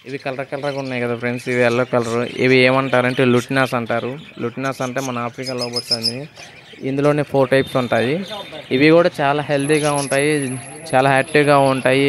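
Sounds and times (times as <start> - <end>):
bird chirping: 0.0 - 12.0
man talking: 0.0 - 12.0.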